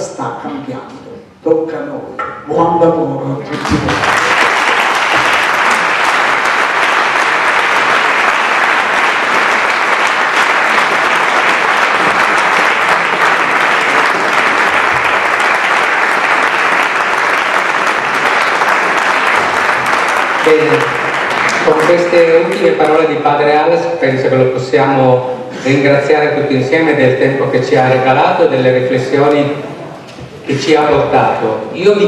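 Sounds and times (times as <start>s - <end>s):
audience applause: 3.5s - 23.1s.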